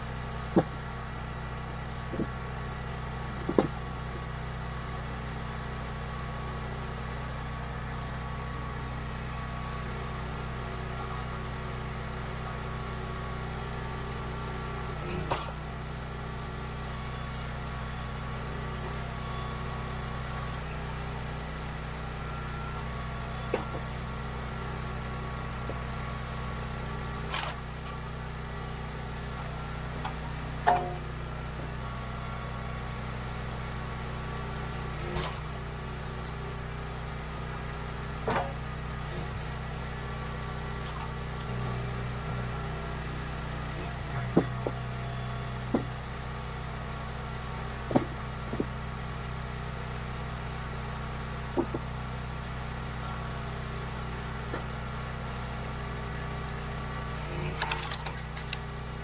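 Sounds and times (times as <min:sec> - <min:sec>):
small gas engine running: 0:00.0 - 0:59.0.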